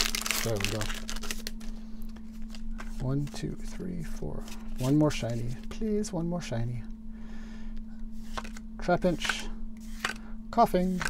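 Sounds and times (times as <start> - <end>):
foil wrapper crinkling: 0.0 - 2.7
cards rustling and ticking: 0.0 - 3.8, 8.2 - 11.0.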